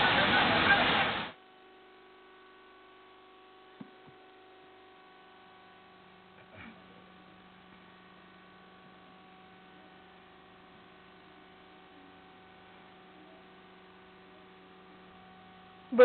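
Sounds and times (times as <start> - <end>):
faint electrical hum: 0.0 - 16.0.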